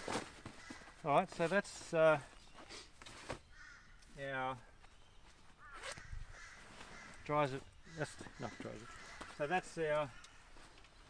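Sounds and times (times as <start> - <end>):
crow calling: 0.0 - 1.2, 3.3 - 11.0.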